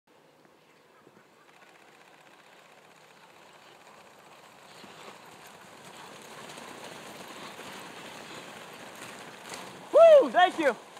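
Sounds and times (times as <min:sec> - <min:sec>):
sled runners hissing on snow: 0:02.7 - 0:10.9.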